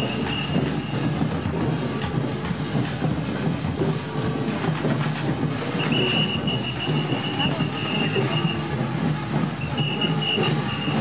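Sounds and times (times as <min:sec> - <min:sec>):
crowd voices and bustle: 0:00.0 - 0:11.0.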